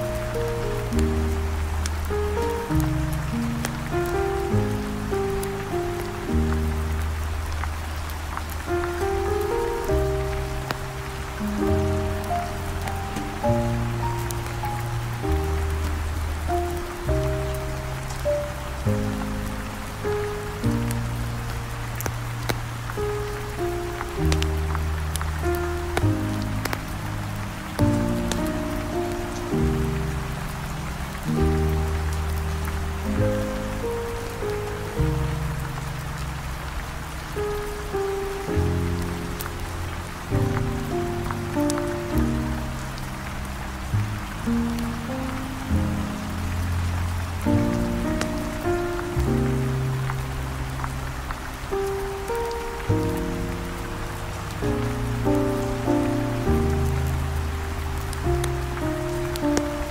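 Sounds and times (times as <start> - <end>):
steady rain: 0.0 - 59.9.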